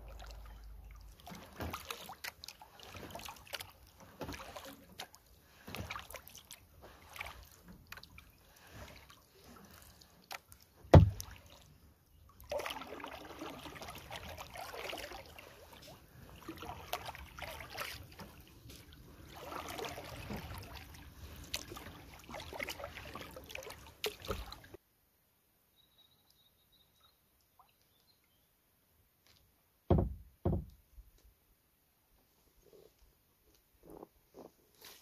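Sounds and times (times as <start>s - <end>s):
paddle splashing water: 0.0s - 24.8s
sharp knock on hull: 10.9s - 11.2s, 29.9s - 30.8s.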